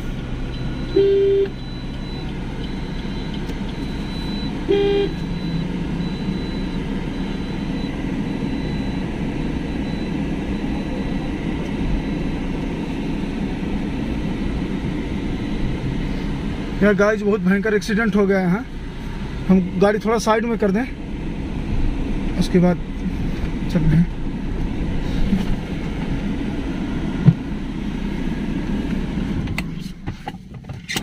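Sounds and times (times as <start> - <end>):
car running noise from cabin: 0.0 - 31.0
vehicle horn toots: 1.0 - 1.5, 4.7 - 5.2.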